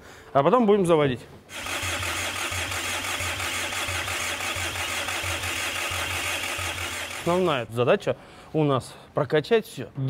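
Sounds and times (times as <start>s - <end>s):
starter motor cranking engine: 1.5s - 7.7s.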